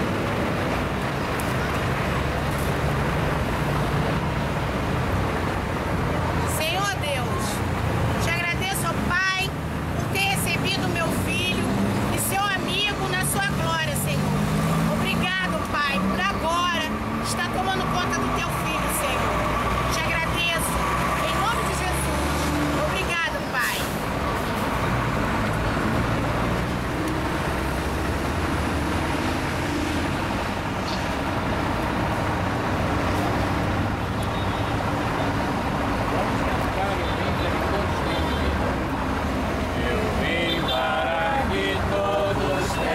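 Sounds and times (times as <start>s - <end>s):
heavy highway traffic: 0.0s - 42.9s
vehicle engine climbing in pitch: 7.4s - 38.0s.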